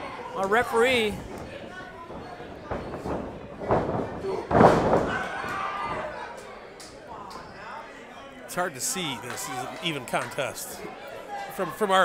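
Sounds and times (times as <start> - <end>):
body slamming onto ring mat: 2.7 - 6.0.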